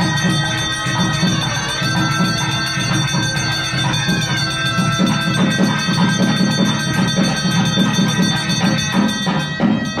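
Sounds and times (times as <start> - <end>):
brass hand bell ringing: 0.0 - 10.0
rhythmic percussion: 0.0 - 10.0.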